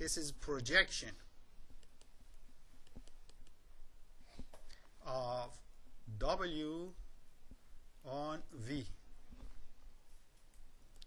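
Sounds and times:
stylus tapping on tablet: 1.6 - 3.6.

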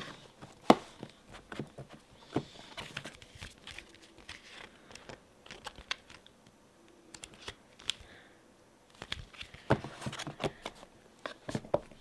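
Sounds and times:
hands handling cardboard box: 0.0 - 6.0, 9.0 - 12.0
paper pages turning: 2.7 - 6.3, 8.9 - 10.3.

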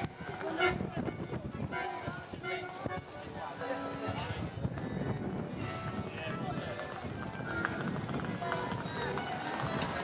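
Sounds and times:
footsteps on stone paving: 0.0 - 10.0
people's voices: 0.0 - 10.0.

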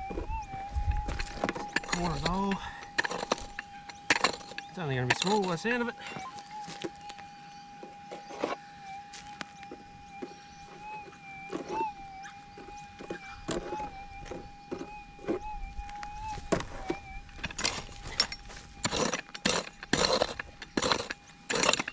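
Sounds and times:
scuffs on dirt: 0.0 - 3.6, 4.2 - 21.2
metal detector threshold hum: 0.0 - 21.9.

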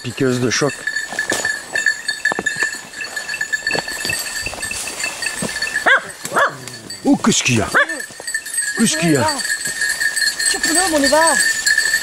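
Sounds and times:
small bell ringing: 0.0 - 12.0.

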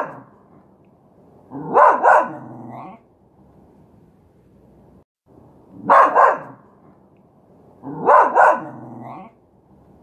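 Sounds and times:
dog barking: 0.0 - 0.3, 1.5 - 3.0, 5.8 - 6.7, 7.8 - 9.3.

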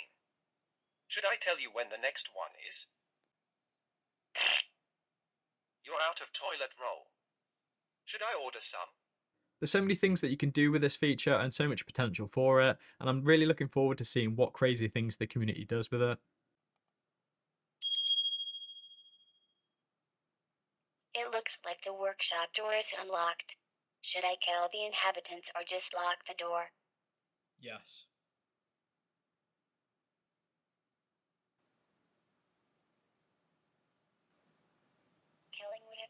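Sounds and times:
high bell-like ding: 17.8 - 19.4.

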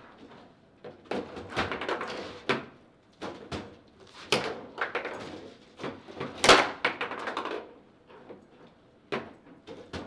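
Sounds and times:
table football ball knocks and clacks: 0.8 - 7.8, 9.1 - 10.0.

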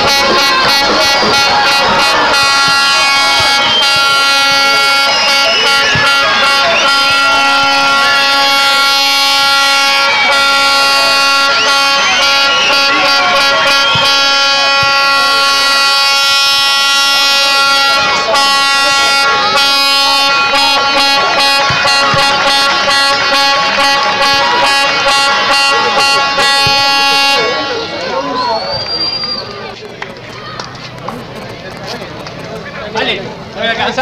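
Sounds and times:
air horn blast: 0.0 - 28.7
crowd shouting and chanting: 0.0 - 34.0
short high whistle: 0.7 - 8.3, 10.0 - 18.1, 26.4 - 29.7.

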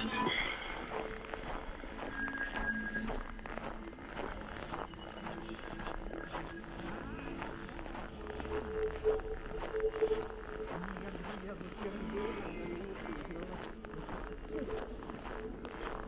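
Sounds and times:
footsteps on snow: 0.0 - 16.0.

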